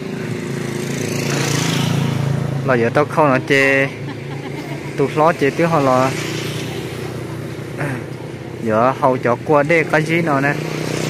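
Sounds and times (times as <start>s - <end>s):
motor vehicle engine running: 0.0s - 11.0s.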